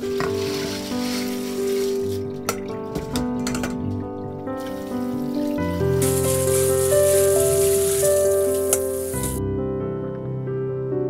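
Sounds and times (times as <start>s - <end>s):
water and beans pouring through strainer: 0.0s - 2.6s, 4.5s - 9.4s
background music: 0.0s - 11.0s.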